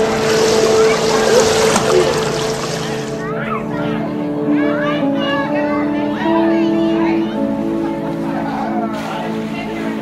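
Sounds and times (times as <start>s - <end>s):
pool water rushing: 0.0s - 3.4s, 7.6s - 10.0s
faint voices: 0.0s - 10.0s.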